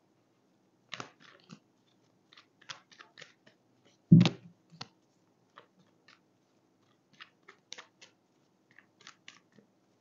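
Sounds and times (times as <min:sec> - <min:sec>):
cards being shuffled: 0:00.9 - 0:03.6.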